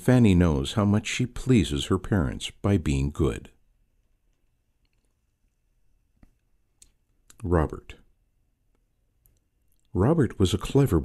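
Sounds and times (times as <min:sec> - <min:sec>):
person reading aloud: 0:00.0 - 0:03.6, 0:07.2 - 0:08.1, 0:09.7 - 0:11.0.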